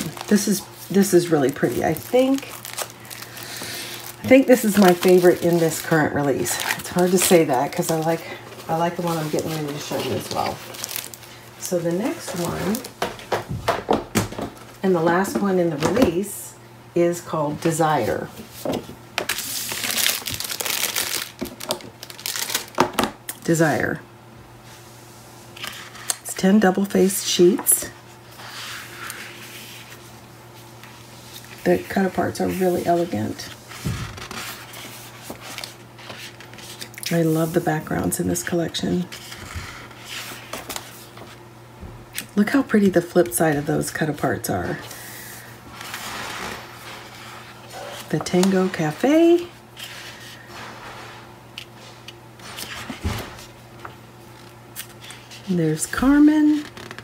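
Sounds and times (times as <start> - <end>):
paper crinkling and rustling: 0.0 - 13.4, 18.0 - 22.9, 28.3 - 41.4, 45.7 - 57.0.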